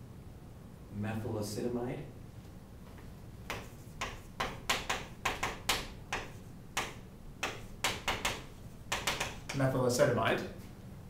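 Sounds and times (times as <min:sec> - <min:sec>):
chalk tapping and scratching: 0:03.4 - 0:09.6.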